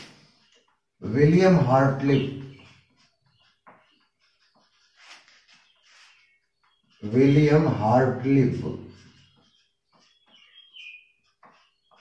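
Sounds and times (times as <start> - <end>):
marker scratching on whiteboard: 0.0 - 12.0
marker squeaking: 0.0 - 12.0.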